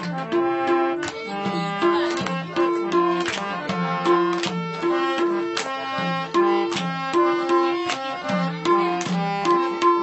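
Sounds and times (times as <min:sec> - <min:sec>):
harmonium melody: 0:00.0 - 0:10.0.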